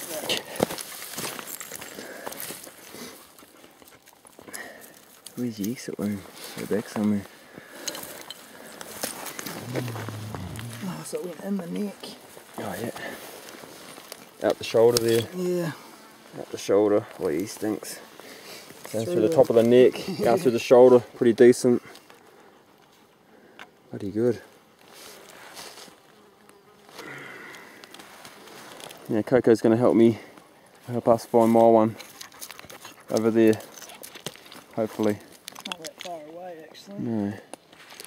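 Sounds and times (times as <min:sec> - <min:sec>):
flies buzzing: 0:08.4 - 0:11.8
gravel crunching: 0:08.8 - 0:11.1
clothing rubbing microphone: 0:09.5 - 0:11.0
man speaking low: 0:09.6 - 0:11.0.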